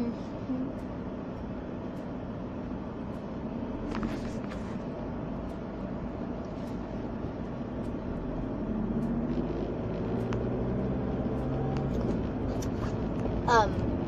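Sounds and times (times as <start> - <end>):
engine and road rumble inside car: 0.0 - 14.0.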